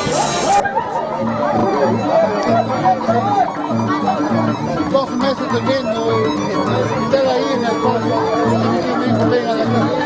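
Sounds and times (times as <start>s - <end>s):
festive band music with cymbals: 0.0s - 0.8s
brass band bass notes: 0.0s - 10.0s
people chattering: 0.0s - 10.0s.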